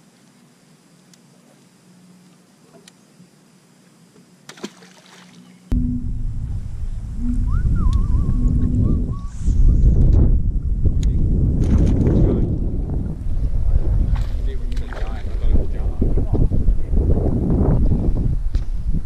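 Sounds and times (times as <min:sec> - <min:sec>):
wind buffeting microphone: 0:05.7 - 0:19.0.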